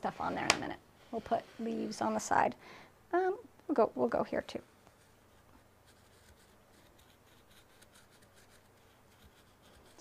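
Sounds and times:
carving tool scratching clay: 0:05.0 - 0:10.0.

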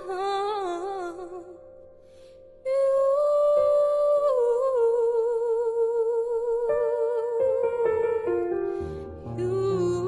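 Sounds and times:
woman singing with vibrato: 0:00.0 - 0:01.6, 0:02.7 - 0:08.2, 0:09.2 - 0:10.0.

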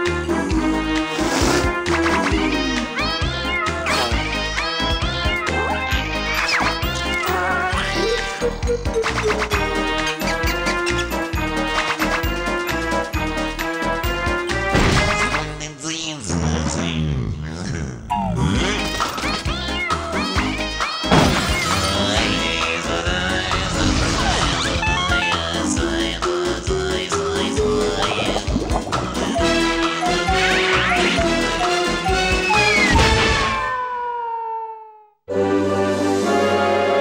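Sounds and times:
upbeat cartoon theme music: 0:00.0 - 0:17.1, 0:18.1 - 0:33.7, 0:35.3 - 0:37.0
gliding vocal sounds: 0:21.6 - 0:31.2.

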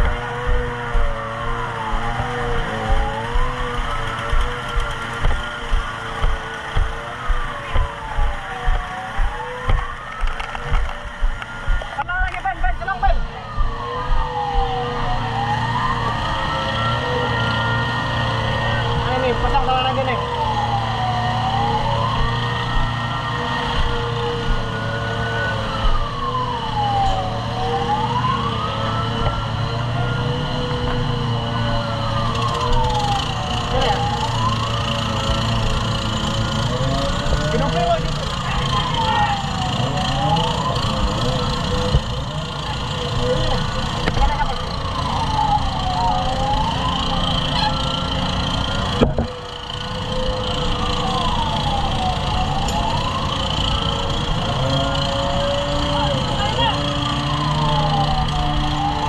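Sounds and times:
low thumps: 0:00.0 - 0:15.2
engine running: 0:00.0 - 0:59.0
wailing emergency siren: 0:00.0 - 0:59.0.

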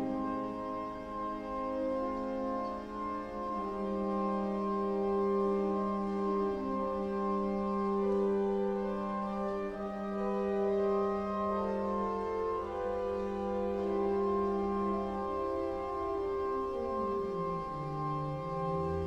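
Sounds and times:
organ playing slow chords: 0:00.0 - 0:19.0.

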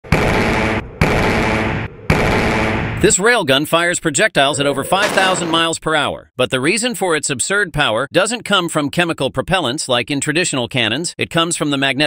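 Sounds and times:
railgun blasts: 0:04.8 - 0:05.8.

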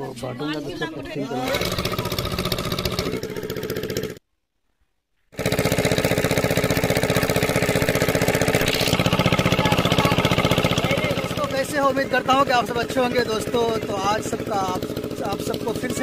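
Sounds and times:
engine-driven water pump running: 0:01.4 - 0:04.2, 0:05.4 - 0:16.0.

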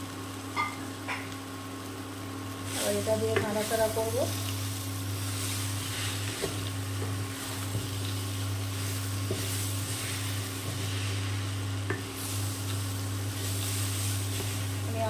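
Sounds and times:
steady low hum: 0:00.0 - 0:15.0
spatula scraping in a pan: 0:05.2 - 0:14.8.

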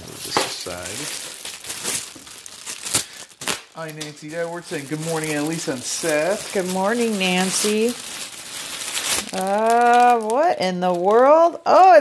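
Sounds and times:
plastic packaging crinkling: 0:00.0 - 0:11.4.

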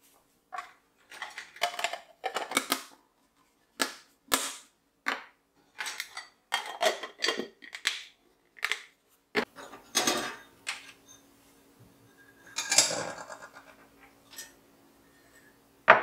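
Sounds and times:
dishes clinking in wire rack: 0:09.5 - 0:11.2, 0:12.1 - 0:14.6.

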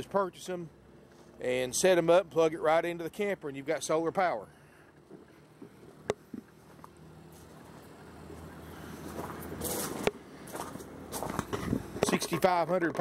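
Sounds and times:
footsteps crunching on gravel: 0:05.6 - 0:12.4.

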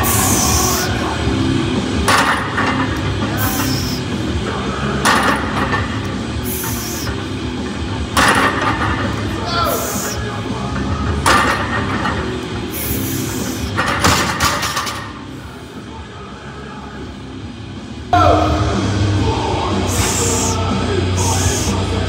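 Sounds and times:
rock music: 0:00.0 - 0:14.2, 0:16.5 - 0:22.0.

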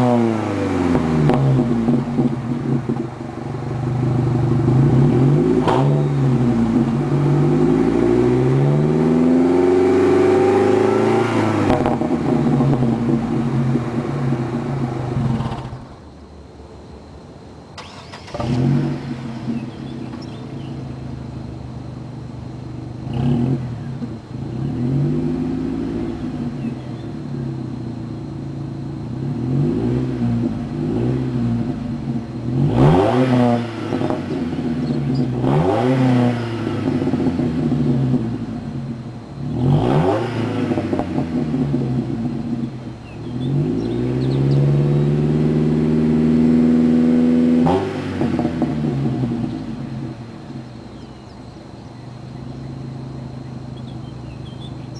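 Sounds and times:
truck exhaust idling and revving: 0:00.0 - 0:16.2, 0:17.9 - 0:54.9.

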